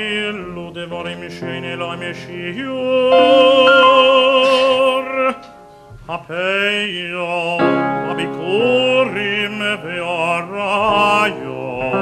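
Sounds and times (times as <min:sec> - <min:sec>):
man singing with vibrato: 0:00.0 - 0:12.0
piano accompaniment: 0:00.0 - 0:12.0.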